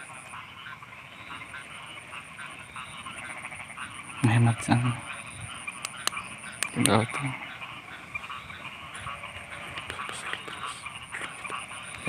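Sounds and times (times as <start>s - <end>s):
frogs croaking: 0.0s - 12.0s.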